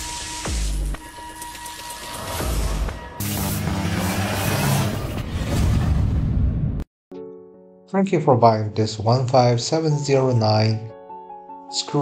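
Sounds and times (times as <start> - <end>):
logo intro music: 0.0 - 6.4.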